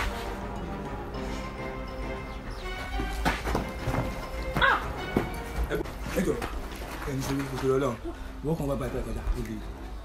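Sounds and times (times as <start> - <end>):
background music with held tones: 0.0 - 10.0.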